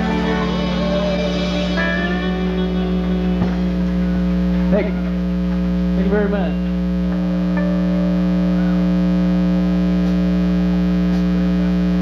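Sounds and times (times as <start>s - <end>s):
electrical hum from amplifiers: 0.0s - 12.0s.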